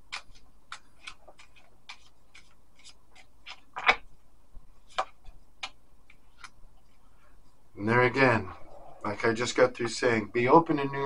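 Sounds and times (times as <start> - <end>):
cards being shuffled: 0.0 - 4.1, 4.8 - 6.6.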